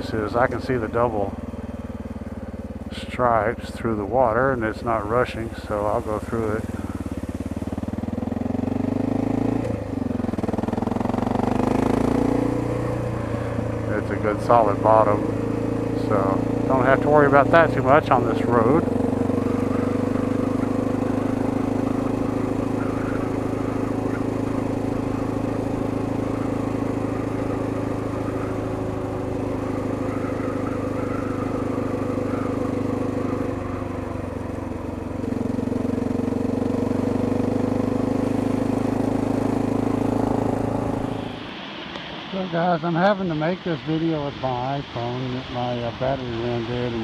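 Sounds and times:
motorcycle engine cruising: 0.0 - 47.0.

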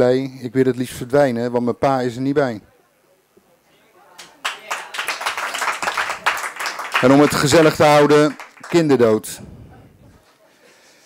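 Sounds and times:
audience applauding: 4.2 - 9.4.

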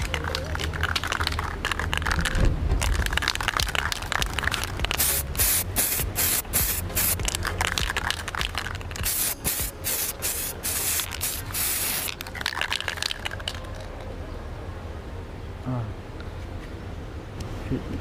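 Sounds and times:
aerosol spray can hissing: 4.9 - 7.3, 8.1 - 12.2.

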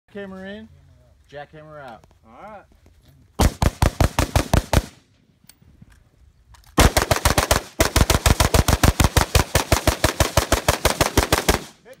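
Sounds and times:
rapid rifle fire: 3.4 - 5.0, 6.8 - 11.8.

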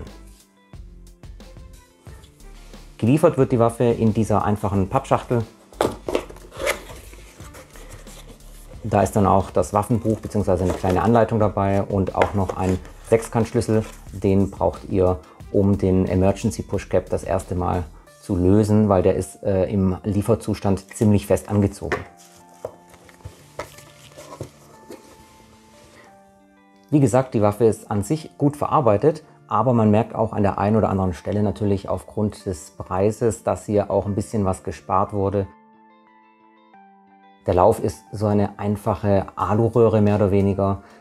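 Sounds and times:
soft background music: 0.0 - 41.0
cardboard rustling scrape: 5.8 - 11.3, 12.2 - 14.1, 21.9 - 26.1.

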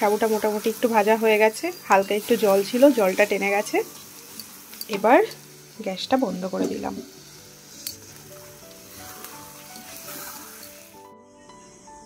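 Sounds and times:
food sizzling in a pan: 0.0 - 12.0
quiet background music: 0.0 - 12.0.

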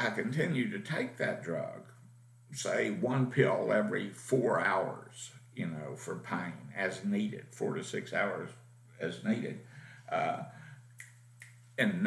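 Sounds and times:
man speaking: 0.0 - 10.6, 11.8 - 12.0.

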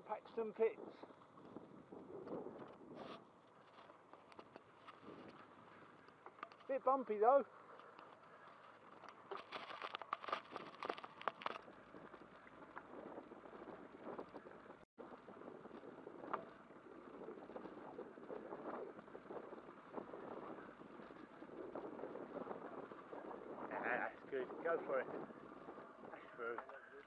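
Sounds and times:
bicycle rattling on dirt track: 0.0 - 27.0.

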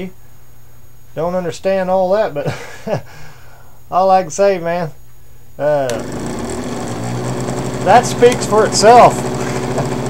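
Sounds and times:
cordless drill motor whirring: 5.9 - 10.0.

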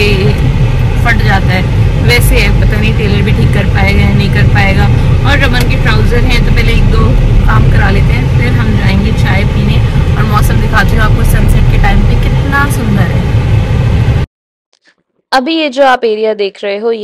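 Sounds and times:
woman talking: 0.0 - 0.4, 1.0 - 13.3, 15.4 - 17.0
car road and engine rumble: 0.0 - 14.3.

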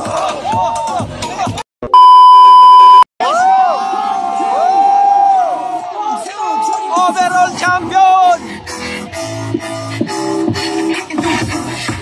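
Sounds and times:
loud test tone beep: 1.9 - 3.1
audience cheering and whooping: 3.2 - 6.2.

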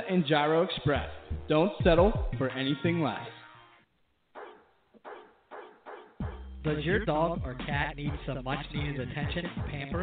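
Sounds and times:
dog barking: 4.4 - 6.3.

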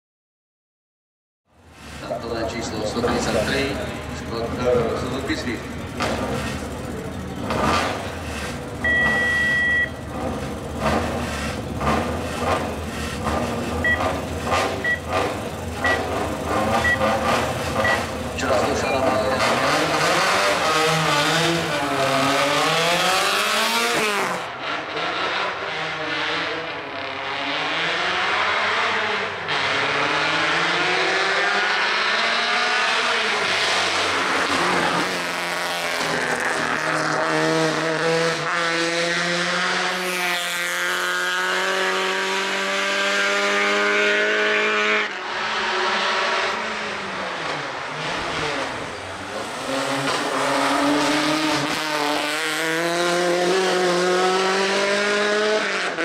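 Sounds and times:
car engine revving: 1.6 - 56.0
car accelerating through gears: 1.8 - 56.0
long beep: 8.8 - 10.0
short beeps: 8.8 - 10.0, 13.8 - 14.2, 14.8 - 15.1, 15.8 - 16.1, 16.8 - 17.1, 17.8 - 18.1.

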